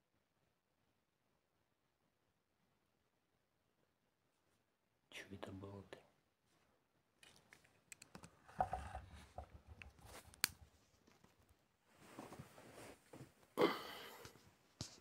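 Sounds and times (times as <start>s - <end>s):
sharp clicks and taps: 7.2s - 8.8s
low rumbling of phone handling: 8.4s - 10.4s.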